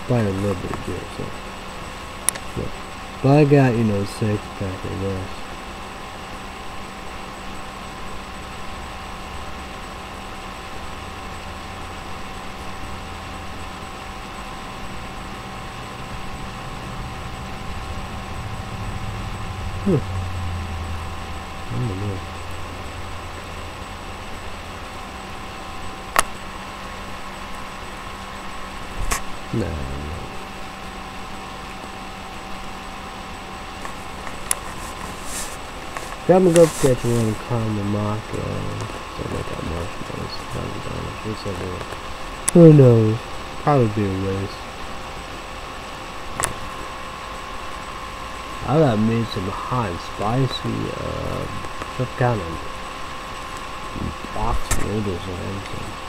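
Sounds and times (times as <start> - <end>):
low room hum: 0.0 - 56.0
faint vocal murmurs: 18.7 - 20.5, 21.7 - 22.3, 29.5 - 30.4.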